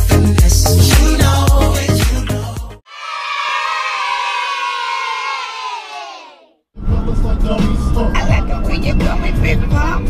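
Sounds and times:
crowd cheering and shouting: 2.9s - 6.5s.

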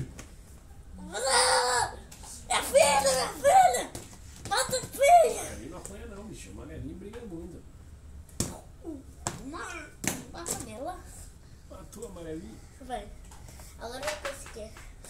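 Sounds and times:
boy and man talking playfully: 1.0s - 15.0s.

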